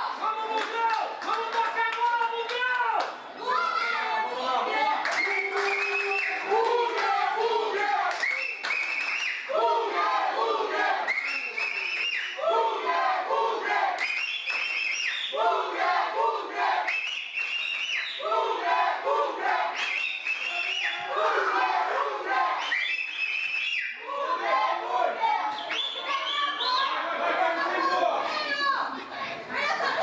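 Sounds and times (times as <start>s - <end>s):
football supporters chanting: 6.2s - 8.2s, 9.5s - 11.1s, 12.4s - 14.0s, 15.3s - 16.9s, 18.2s - 19.8s, 21.1s - 22.6s, 24.0s - 25.8s.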